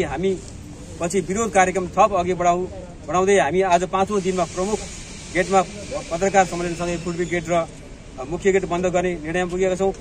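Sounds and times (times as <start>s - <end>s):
man reading aloud: 0.0s - 0.5s.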